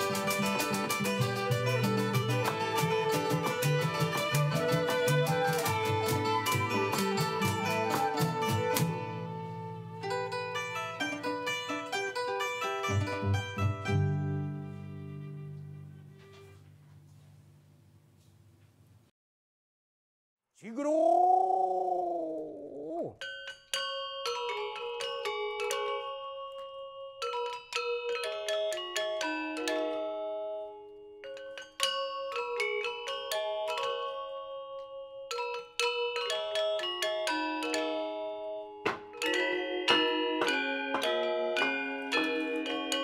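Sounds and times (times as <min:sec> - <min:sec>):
person holding long sung note: 0:20.6 - 0:23.2
gamelan metallophones: 0:23.2 - 0:43.0.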